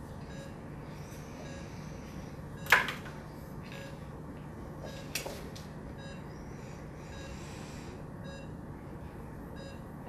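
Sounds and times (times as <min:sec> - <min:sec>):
steady low hum: 0:00.0 - 0:10.0
pulse oximeter beeping: 0:00.2 - 0:02.9, 0:04.8 - 0:08.6, 0:09.5 - 0:10.0.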